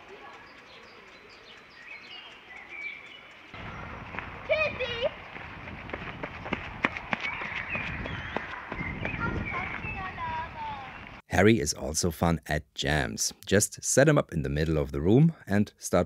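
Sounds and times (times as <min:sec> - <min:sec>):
sharp clicks: 0:00.0 - 0:04.4
birds chirping: 0:00.0 - 0:11.2.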